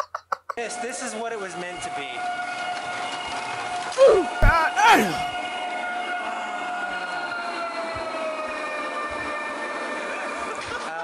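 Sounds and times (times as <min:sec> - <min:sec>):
model train motor whining: 0:00.6 - 0:04.4.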